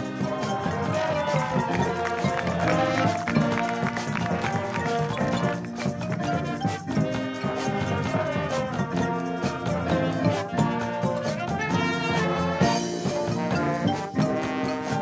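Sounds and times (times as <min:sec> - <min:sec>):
brass chords: 0:00.0 - 0:15.0
drums keeping a beat: 0:00.0 - 0:15.0
marching band playing: 0:00.0 - 0:15.0.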